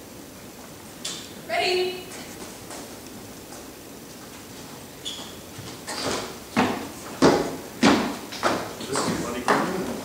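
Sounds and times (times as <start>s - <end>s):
footsteps on wooden stage: 2.1s - 10.0s.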